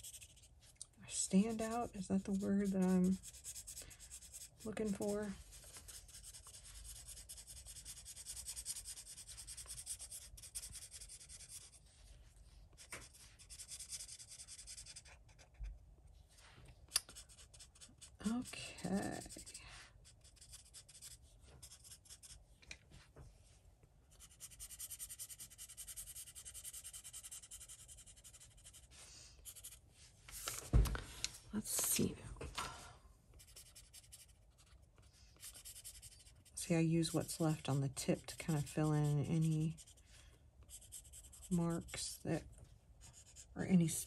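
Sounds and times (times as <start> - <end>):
marker tip scrubbing on paper: 0.0 - 0.5, 1.2 - 11.8, 12.8 - 15.1, 19.2 - 22.4, 24.2 - 29.8, 35.4 - 40.0, 40.7 - 42.2.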